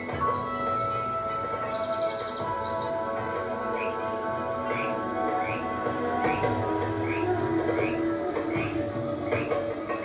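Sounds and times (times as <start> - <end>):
calm music with long held notes: 0.0 - 10.0
high bird chirps and trills: 0.0 - 10.0.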